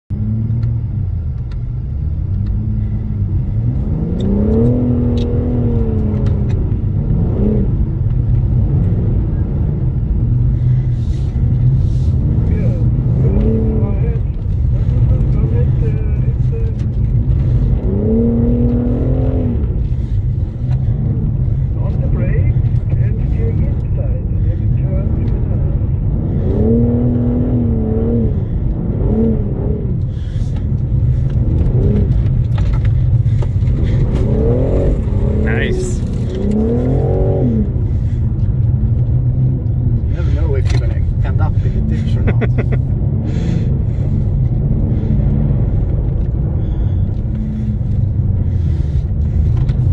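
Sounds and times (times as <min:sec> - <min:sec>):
car engine revving: 0:00.1 - 0:49.9
low rumble of tyres and road: 0:00.1 - 0:49.9.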